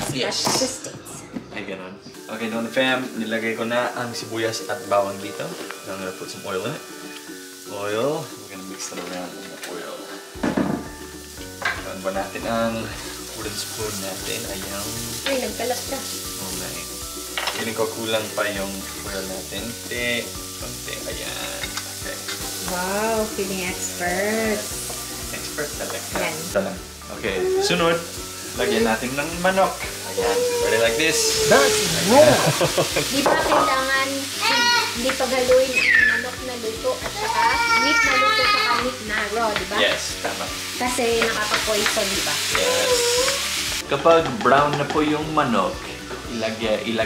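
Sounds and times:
onion and garlic sizzling in oil: 0:02.1 - 0:47.0
kitchenware knocking and clattering: 0:10.4 - 0:11.0, 0:17.4 - 0:17.8, 0:32.8 - 0:33.8, 0:44.1 - 0:45.1
person exclaiming: 0:27.3 - 0:28.0, 0:28.6 - 0:29.1, 0:30.1 - 0:32.7.

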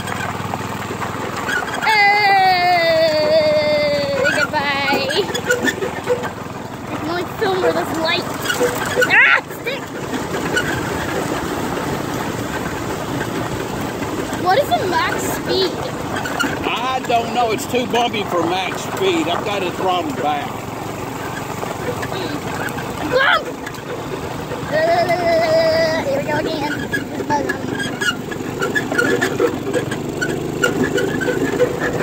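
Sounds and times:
go-kart rumbling and rattling: 0:00.0 - 0:32.0
rider's wobbling voice: 0:01.8 - 0:06.2, 0:24.6 - 0:28.1.

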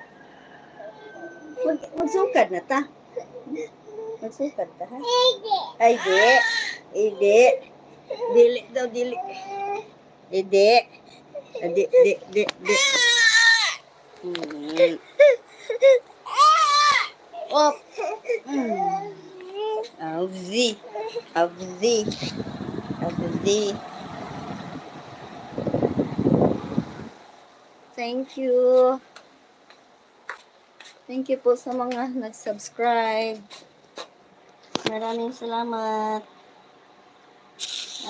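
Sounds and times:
toddler crying: 0:01.2 - 0:02.6, 0:05.1 - 0:06.8, 0:12.6 - 0:13.8, 0:14.8 - 0:19.9, 0:20.8 - 0:21.3.

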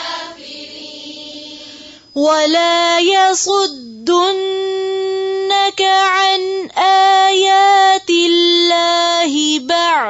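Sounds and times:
woman chanting melodically: 0:00.0 - 0:10.0.

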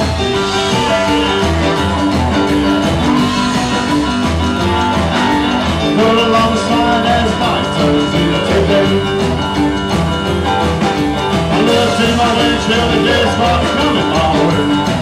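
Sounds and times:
drum kit: 0:00.0 - 0:15.0
electric guitar: 0:00.0 - 0:15.0
upright bass: 0:00.0 - 0:15.0.

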